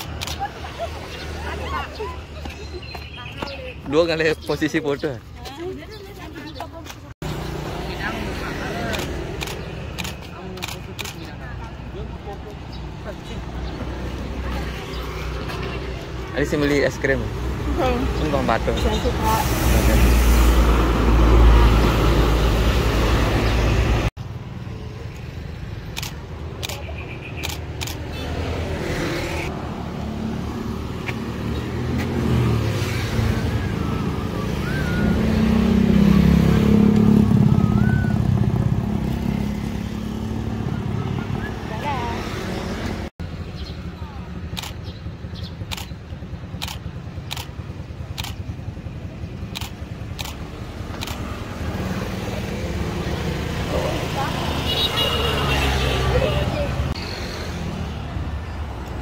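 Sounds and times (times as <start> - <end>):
low traffic rumble: 0.0 - 59.0
vehicles passing: 0.0 - 59.0.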